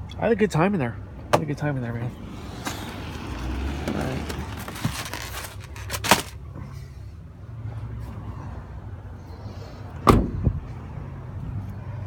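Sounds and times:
car door thud: 10.0s - 10.5s.

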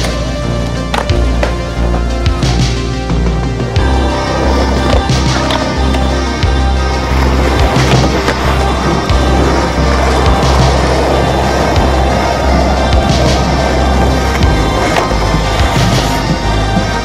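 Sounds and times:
skateboard wheels rolling: 0.0s - 17.0s
synth music with bass line: 0.0s - 17.0s
skateboard clacking on concrete: 0.8s - 2.0s, 4.3s - 6.2s, 7.0s - 16.4s.

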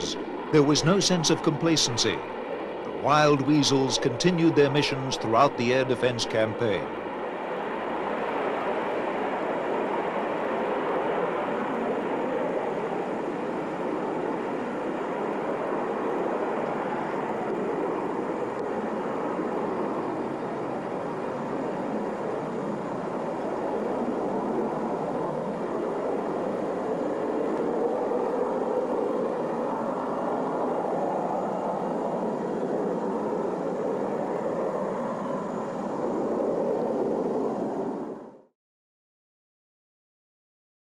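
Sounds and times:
jet engines roaring: 0.0s - 38.2s.

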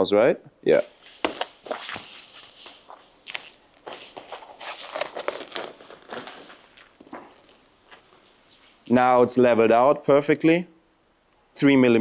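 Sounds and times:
hands handling foam model: 1.0s - 8.9s.

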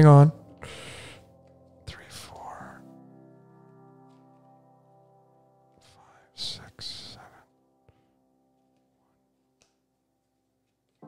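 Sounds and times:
ambient background music chords: 0.0s - 11.0s
breathy whispered sounds: 0.6s - 3.0s, 5.8s - 7.5s.

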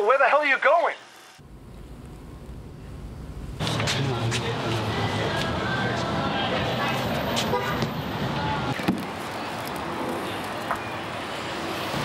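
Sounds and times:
city traffic noise: 1.4s - 12.0s.

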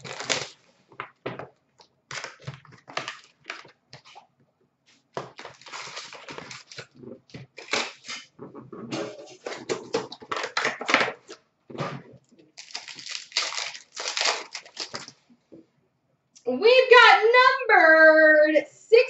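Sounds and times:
card packaging rustling: 0.0s - 0.7s, 5.2s - 8.3s, 12.6s - 15.2s.

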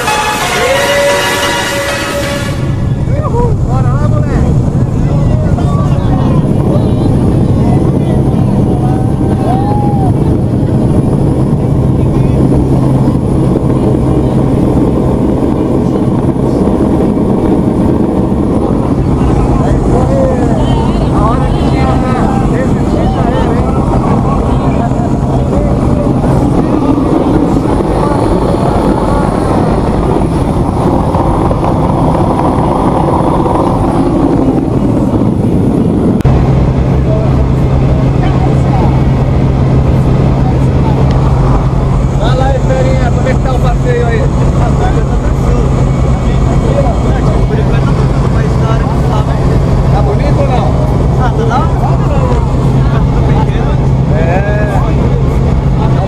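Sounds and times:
plane engine and propeller drone: 0.0s - 56.0s.

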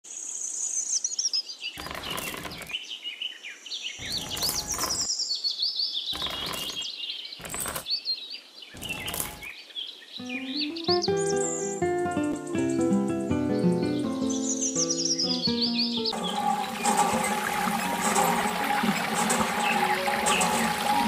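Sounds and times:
small birds chirping: 0.1s - 21.0s
pebbles rattling from bucket: 1.8s - 2.8s, 4.0s - 5.1s, 6.2s - 6.8s, 7.4s - 7.9s, 8.8s - 9.5s.

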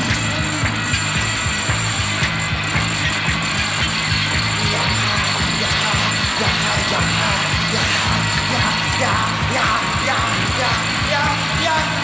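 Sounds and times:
industrial rock instrumental: 0.0s - 12.0s.

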